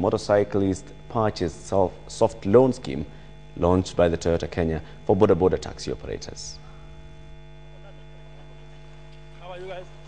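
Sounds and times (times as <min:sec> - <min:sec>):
electrical mains hum: 0:00.0 - 0:10.0.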